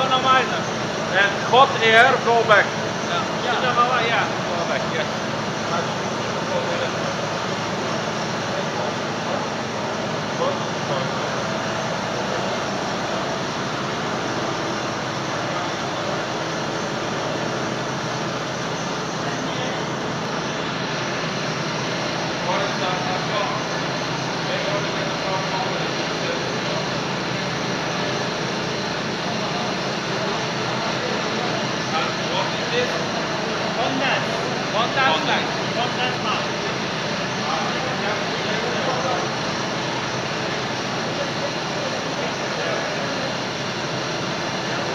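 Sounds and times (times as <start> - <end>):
boiler plant machinery noise: 0.0 - 44.9.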